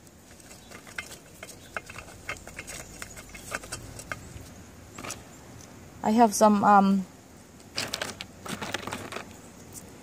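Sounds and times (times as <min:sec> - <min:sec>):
rocks clicking against pot: 0:00.0 - 0:05.3, 0:07.6 - 0:09.4.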